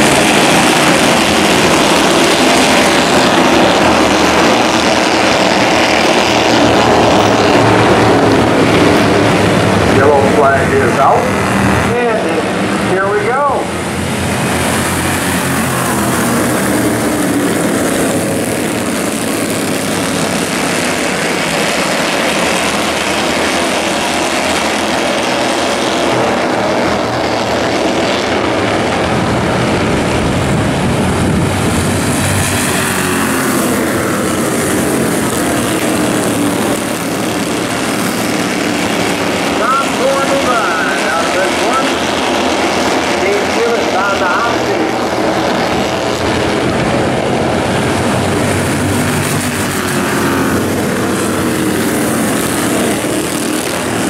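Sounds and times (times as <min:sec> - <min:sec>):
race car engines passing: 0:00.0 - 0:54.0.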